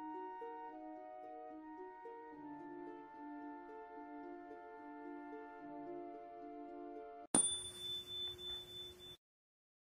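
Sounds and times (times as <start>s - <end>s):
soft background music: 0.0s - 7.3s
bright bell ding: 7.4s - 9.2s.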